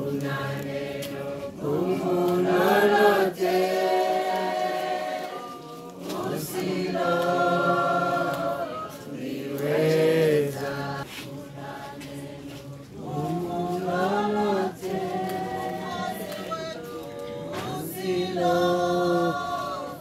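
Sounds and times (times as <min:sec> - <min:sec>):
choir singing held notes: 0:00.0 - 0:20.0.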